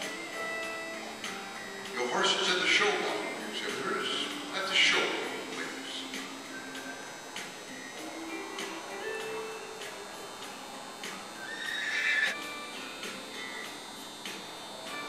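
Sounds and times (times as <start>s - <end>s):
background music: 0.0s - 15.0s
horse whinnying: 11.4s - 12.4s.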